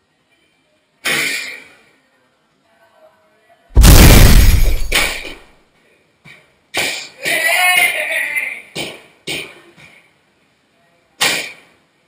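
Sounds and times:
loud crash with heavy bass: 0:03.8 - 0:05.4
smaller hit: 0:03.8 - 0:05.4.

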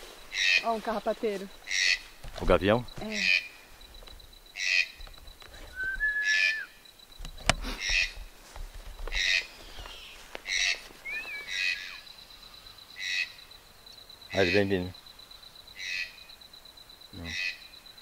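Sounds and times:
bird whistled note: 0:05.7 - 0:06.8, 0:11.0 - 0:12.0
bird harsh screech: 0:05.8 - 0:06.7, 0:09.2 - 0:12.0.

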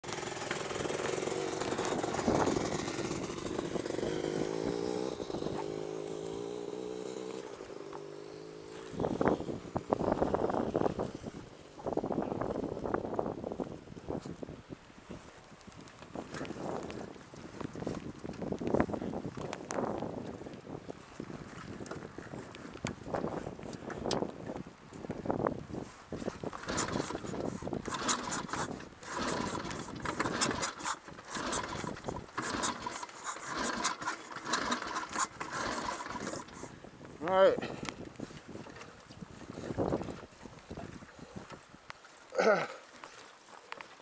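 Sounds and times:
motorcycle engine idling: 0:00.0 - 0:10.9
wind buffeting microphone: 0:00.1 - 0:41.9.

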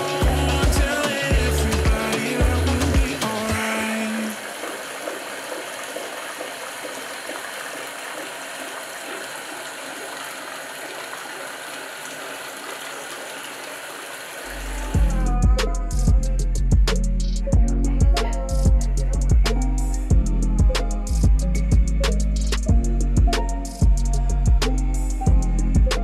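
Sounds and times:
bass-heavy music: 0:00.0 - 0:04.0, 0:14.5 - 0:26.0
water pouring into bathtub: 0:03.0 - 0:14.8.

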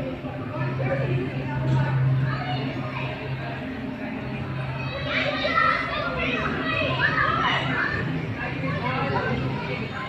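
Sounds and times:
children chattering and calling out: 0:00.0 - 0:10.0
steady low hum: 0:00.0 - 0:10.0.

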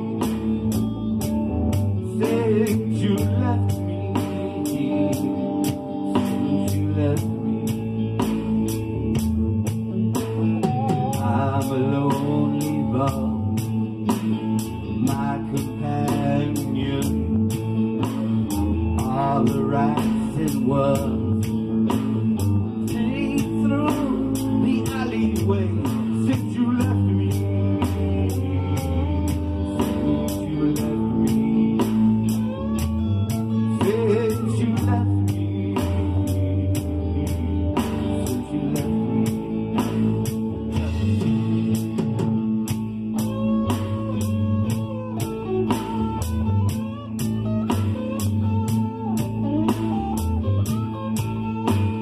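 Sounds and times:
blues-rock band playing: 0:00.0 - 0:52.0
lead guitar bending notes: 0:00.0 - 0:52.0.

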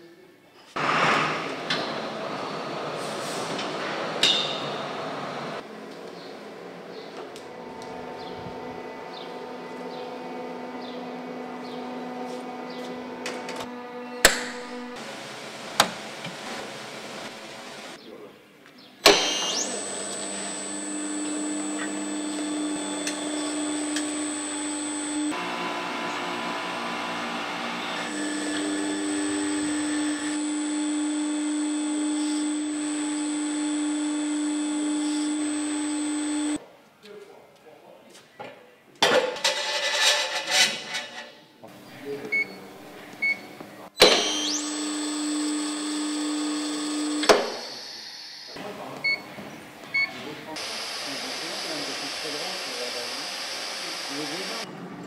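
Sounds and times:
knocks and workshop clatter: 0:03.4 - 0:04.7, 0:13.2 - 0:14.7, 0:38.4 - 0:41.8
electric motors humming: 0:07.4 - 0:18.0, 0:19.0 - 0:36.6, 0:41.7 - 0:54.7.

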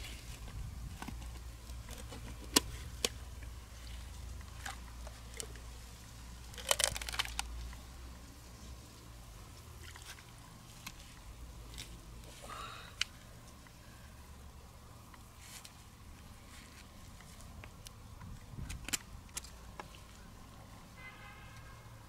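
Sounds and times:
crackles: 0:00.0 - 0:14.3.

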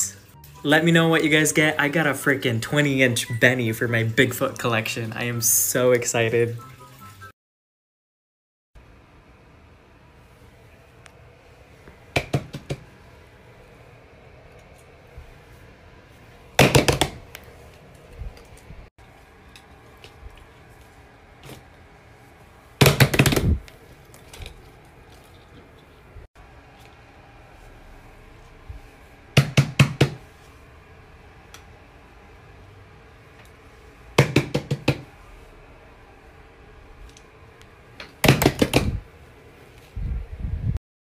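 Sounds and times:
hands slapping plush toys: 0:38.2 - 0:39.0.

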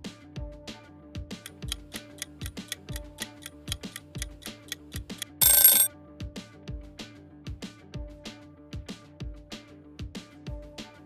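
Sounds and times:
music with ticking beat: 0:01.5 - 0:05.9
ringing alarm: 0:01.5 - 0:05.9.

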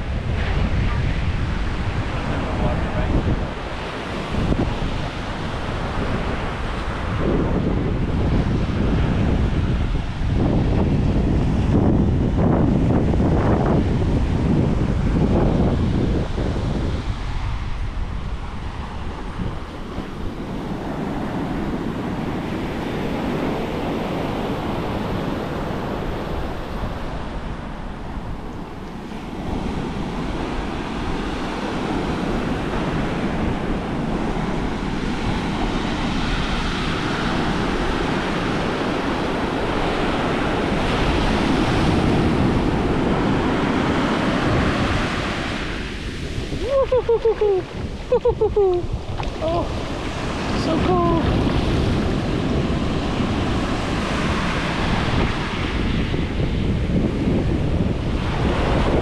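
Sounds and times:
surf breaking on sand: 0:00.0 - 0:59.0
wind buffeting microphone: 0:00.0 - 0:59.0.

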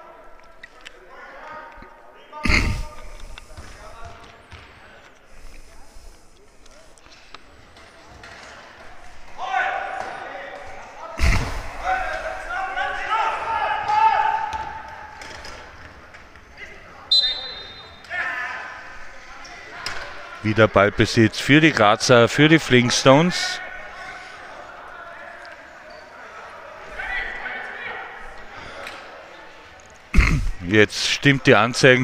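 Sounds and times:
short high whistle: 0:17.1 - 0:18.0.

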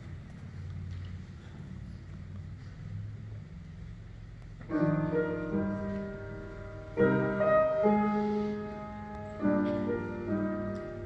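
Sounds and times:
low room hum: 0:00.0 - 0:11.0
piano chord: 0:04.6 - 0:11.0.

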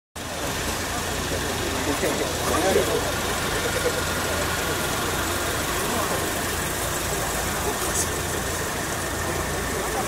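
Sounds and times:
car engine idling: 0:00.2 - 0:10.0
faint voices: 0:00.2 - 0:10.0.

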